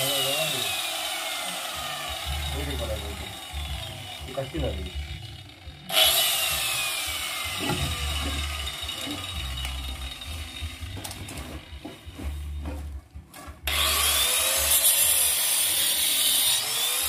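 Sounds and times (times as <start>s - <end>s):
angle grinder whine: 0.0s - 11.7s, 13.7s - 17.0s.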